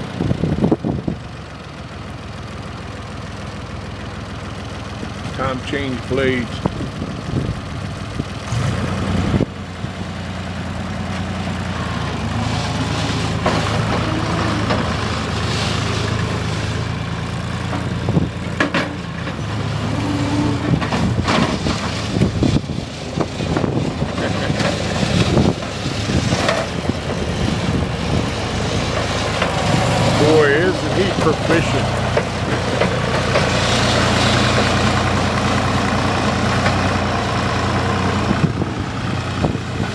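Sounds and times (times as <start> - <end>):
loader engine running: 0.0 - 39.9.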